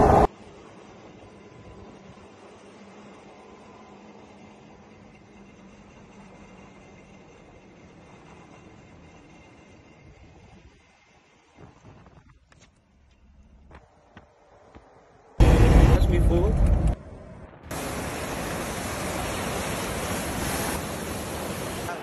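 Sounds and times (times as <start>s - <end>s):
vehicle driving noise: 0.0s - 22.0s.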